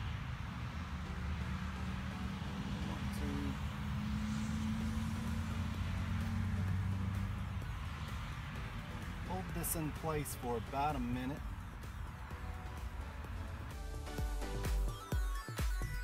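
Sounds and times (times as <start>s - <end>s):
vehicle engine running: 0.0s - 15.0s
road noise hiss: 0.0s - 15.1s.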